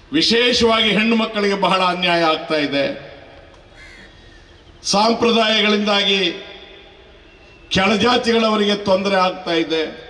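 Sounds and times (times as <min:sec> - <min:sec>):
man speaking over public address: 0:00.0 - 0:03.4, 0:04.8 - 0:07.0, 0:07.7 - 0:10.0
short faint bird call: 0:03.8 - 0:04.8, 0:07.1 - 0:07.7.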